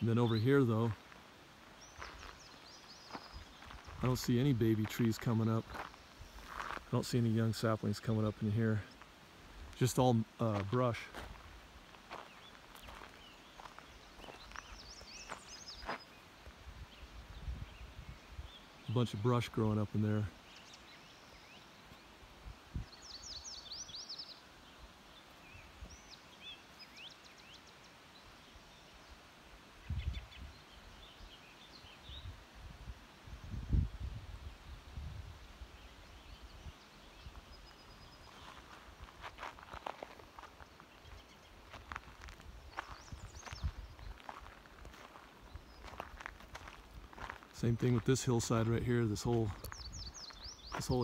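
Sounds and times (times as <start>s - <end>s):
small birds chirping: 0.0s - 32.7s, 33.3s - 51.0s
footsteps on gravel: 1.8s - 7.2s, 9.7s - 16.2s, 38.2s - 51.0s.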